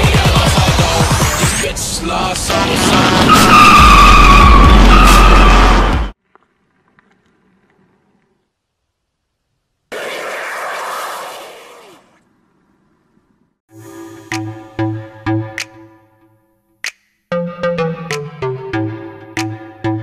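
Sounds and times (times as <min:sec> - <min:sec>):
car tyres squealing: 0:03.1 - 0:06.2, 0:09.9 - 0:12.2.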